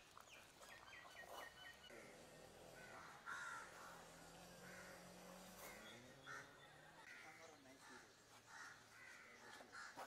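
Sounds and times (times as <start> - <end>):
crows cawing: 2.8 - 10.0.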